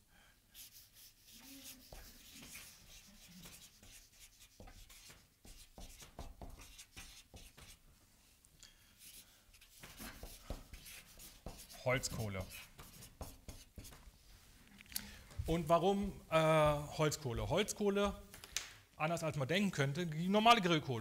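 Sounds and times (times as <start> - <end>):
marker pen squeaking on paper: 0.6 - 7.8.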